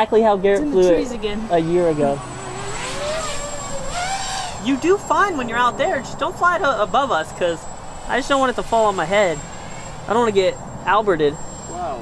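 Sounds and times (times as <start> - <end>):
drone motors whining: 0.0 - 12.0.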